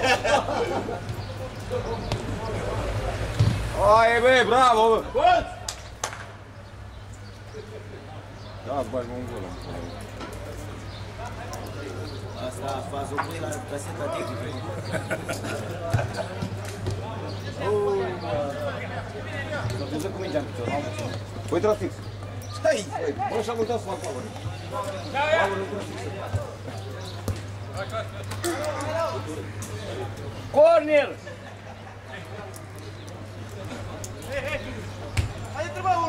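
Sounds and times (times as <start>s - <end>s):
spectators talking and calling out: 0.0s - 36.0s
football being struck: 35.2s - 35.4s.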